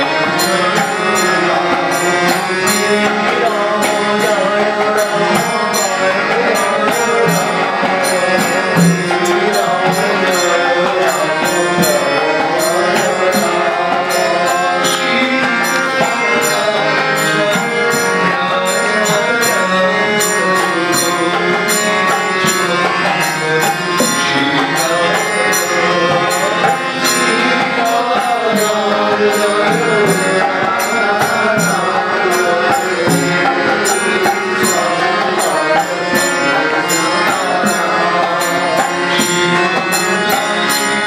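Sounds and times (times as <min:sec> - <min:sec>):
harmonium playing: 0:00.0 - 0:41.0
jingling percussion beat: 0:00.0 - 0:41.0
man singing: 0:00.0 - 0:41.0.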